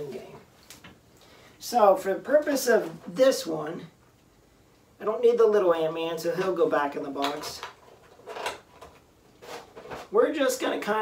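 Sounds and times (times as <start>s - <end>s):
packaging rustling scrapes: 9.3s - 10.2s.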